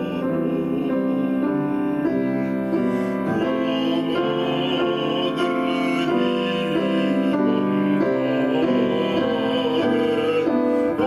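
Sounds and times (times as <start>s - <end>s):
grand piano accompaniment: 0.0s - 11.0s
man singing operatically: 0.0s - 11.0s.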